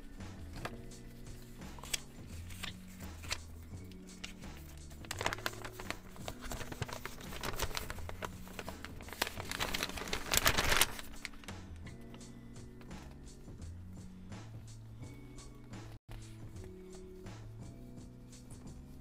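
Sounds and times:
plastic gloves rustling in hair: 0.0s - 13.2s
background music: 0.0s - 19.0s.

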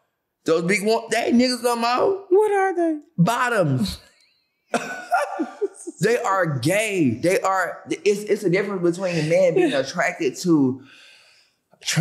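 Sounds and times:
woman laughing heartily: 4.8s - 6.1s, 9.1s - 9.9s.

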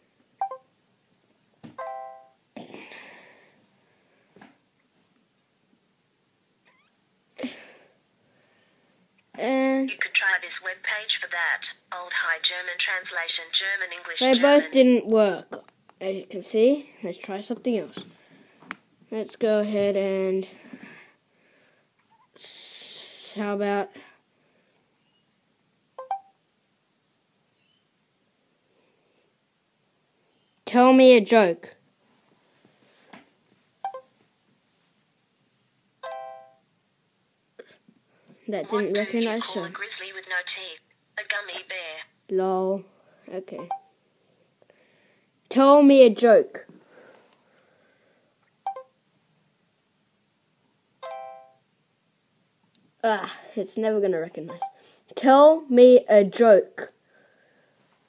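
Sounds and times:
phone beeps: 0.4s - 0.7s, 1.8s - 2.4s, 26.0s - 26.4s, 33.8s - 34.1s, 36.0s - 36.6s, 43.6s - 44.0s, 48.6s - 49.0s, 51.0s - 51.6s, 54.5s - 54.8s.

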